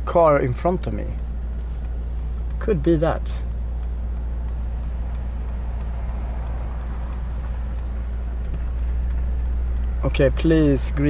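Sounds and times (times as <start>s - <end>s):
car engine humming: 0.0s - 11.0s
turn signal ticking: 0.0s - 11.0s.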